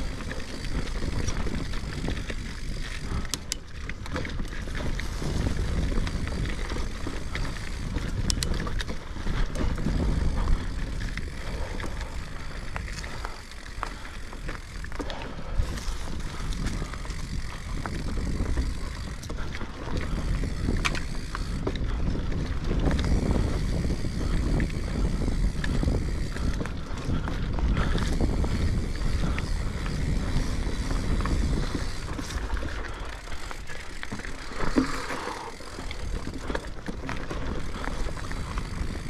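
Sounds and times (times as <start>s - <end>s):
bike clicking and rattling: 0.0s - 39.0s
bike tyres rolling over dirt: 0.0s - 39.0s
wind on microphone: 0.0s - 39.0s.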